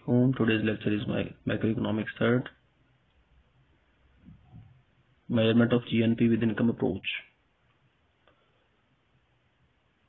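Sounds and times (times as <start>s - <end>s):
man's voice: 0.0s - 2.6s, 5.3s - 7.3s.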